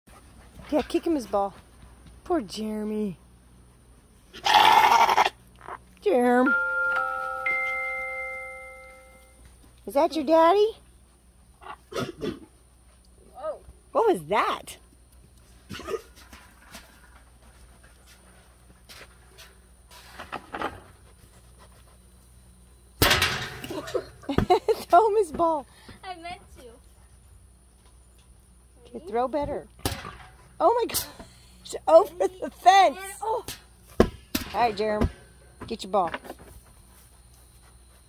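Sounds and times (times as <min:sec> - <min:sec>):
ram bleating raspily: 0:04.3 - 0:05.4
loud bang on metal panels: 0:23.0 - 0:23.8.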